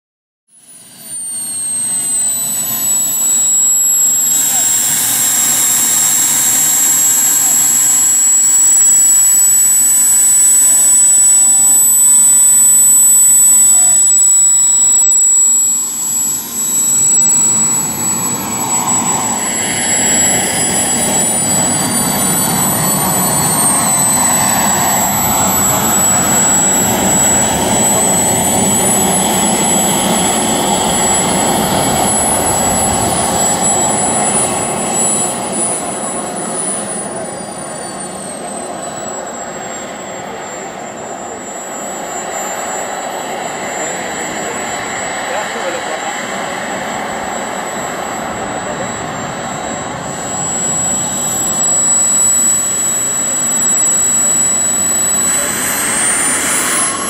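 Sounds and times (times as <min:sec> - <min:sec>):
gliding high tone: 0:00.5 - 0:57.0
model jet turbines whining: 0:00.5 - 0:57.0.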